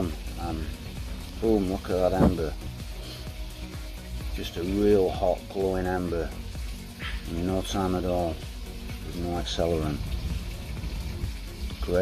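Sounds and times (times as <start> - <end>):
low rumble: 9.0 - 12.0.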